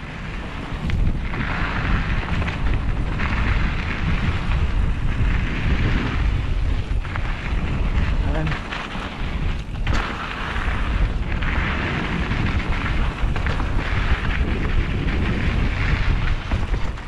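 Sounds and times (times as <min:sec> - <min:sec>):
tyres rolling on dirt trail: 0:00.0 - 0:17.0
wind buffeting microphone: 0:00.0 - 0:17.0.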